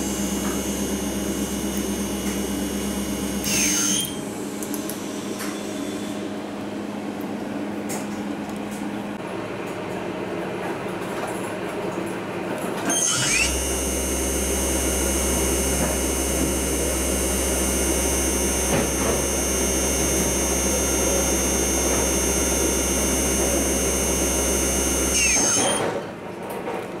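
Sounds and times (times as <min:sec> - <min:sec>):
low hum: 0:00.0 - 0:04.2
motor whine: 0:00.0 - 0:06.6, 0:12.9 - 0:26.0.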